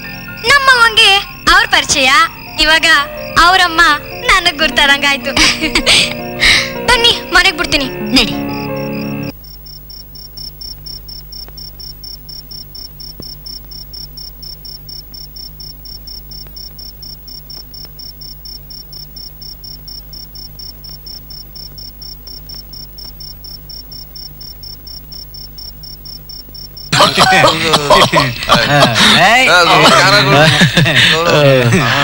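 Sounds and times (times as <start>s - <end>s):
cricket chirping: 0.0s - 32.0s.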